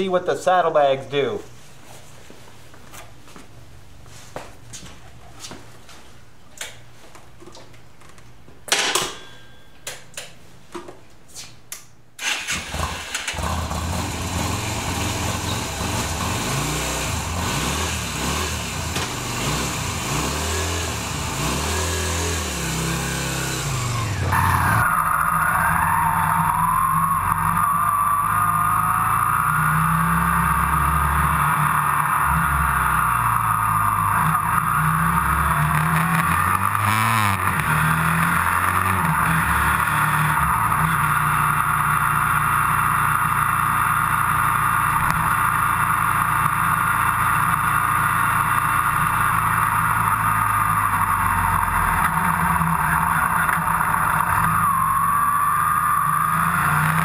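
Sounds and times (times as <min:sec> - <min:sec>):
motorcycle engine starting and revving: 0:12.2 - 0:57.0.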